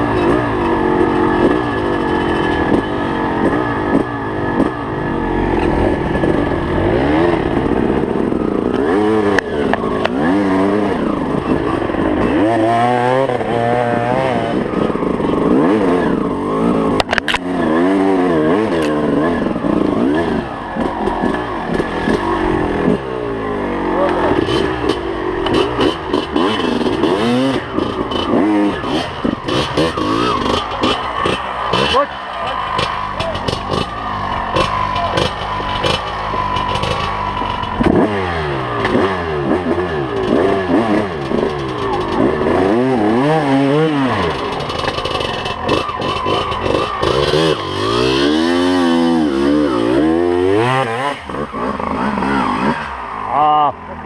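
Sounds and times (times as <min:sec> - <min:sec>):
knocks and clatter from bike: 0:00.0 - 0:04.8, 0:16.6 - 0:23.0, 0:24.1 - 0:50.0
dirt bike engine revving: 0:00.0 - 0:54.0.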